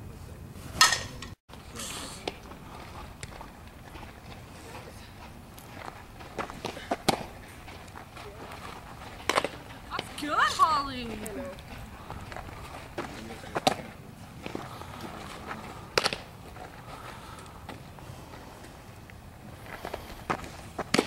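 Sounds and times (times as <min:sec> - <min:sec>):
bat cracking a ball: 0:20.8 - 0:21.0.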